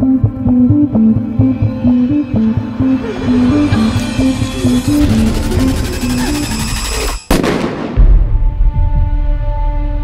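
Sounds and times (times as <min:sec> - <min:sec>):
dramatic background music: 0:00.0 - 0:10.0
loud gunshot-like bang: 0:07.3 - 0:08.3.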